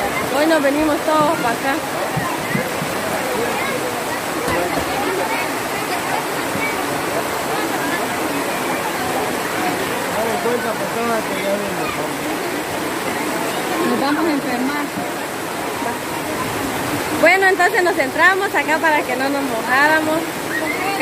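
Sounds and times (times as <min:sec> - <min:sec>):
heavy rain on plastic tarp: 0:00.0 - 0:16.6
crowd talking: 0:00.0 - 0:21.0.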